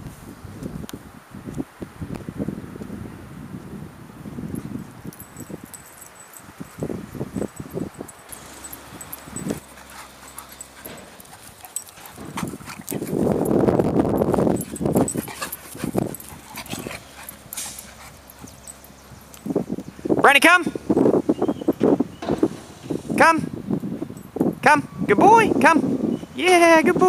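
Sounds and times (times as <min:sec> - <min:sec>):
dogs playing rough: 0:04.5 - 0:20.2.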